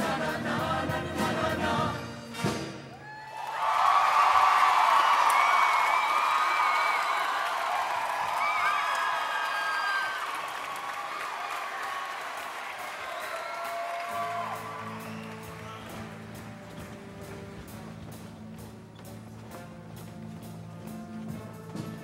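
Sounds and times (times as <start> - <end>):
music: 0.0 - 3.0, 12.8 - 22.0
audience applauding and cheering: 2.8 - 22.0
whistles from audience: 4.8 - 7.5, 8.2 - 12.1, 12.8 - 16.2.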